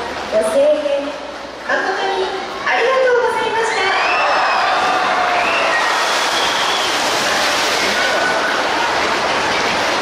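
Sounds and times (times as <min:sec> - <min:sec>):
audience shrieking and cheering: 0:03.6 - 0:09.8
water splashing: 0:04.5 - 0:10.0.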